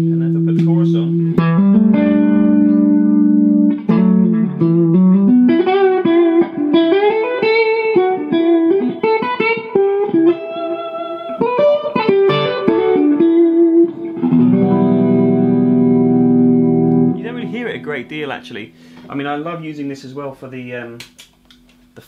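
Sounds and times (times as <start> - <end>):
clean electric guitar with chorus: 0.0 - 19.1.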